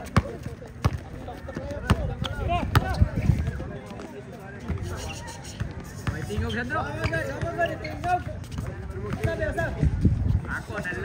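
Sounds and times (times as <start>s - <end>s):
basketball bouncing on court: 0.0s - 3.1s, 5.6s - 9.7s
players' voices: 0.0s - 11.0s.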